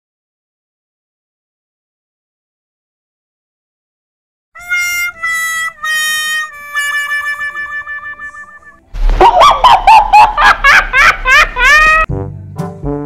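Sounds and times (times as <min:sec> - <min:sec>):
descending mocking wah-wah notes: 0:04.6 - 0:12.1.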